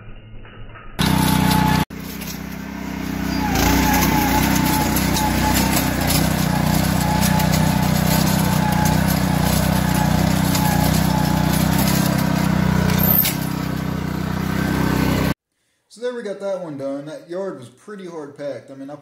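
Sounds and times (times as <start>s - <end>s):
lawn aerator engine running: 1.0s - 15.4s.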